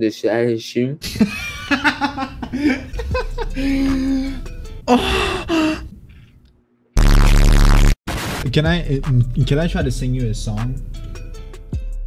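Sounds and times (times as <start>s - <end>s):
loud distorted explosion: 7.0s - 8.4s.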